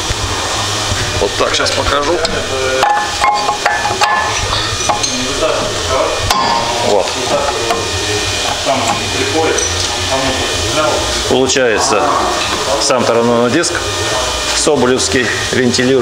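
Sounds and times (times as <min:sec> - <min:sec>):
low shop rumble: 0:00.0 - 0:16.0
voices talking: 0:01.0 - 0:16.0
metal clinks and knocks: 0:02.8 - 0:05.3.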